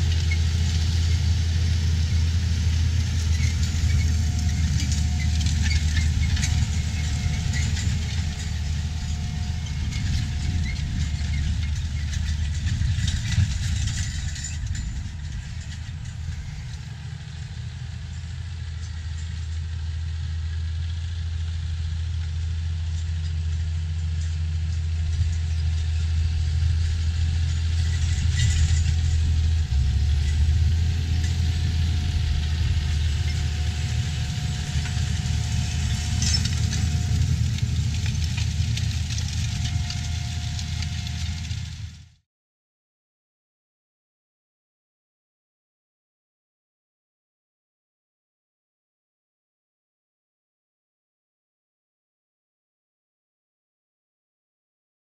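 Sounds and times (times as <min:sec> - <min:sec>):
tractor diesel engine droning: 0:00.0 - 0:42.2.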